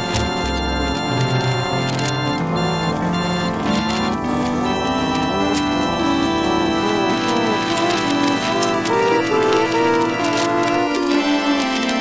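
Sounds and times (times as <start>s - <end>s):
organ-like synthesizer music: 0.0s - 12.0s.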